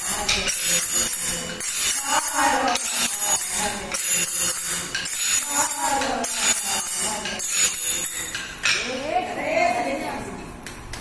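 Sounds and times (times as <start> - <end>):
wooden sticks clacking together: 0.0 - 9.0
voices: 0.0 - 10.7.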